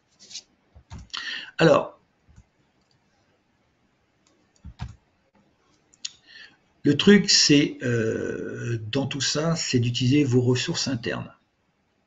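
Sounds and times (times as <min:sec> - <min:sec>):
computer mouse clicks: 0:04.3 - 0:05.0.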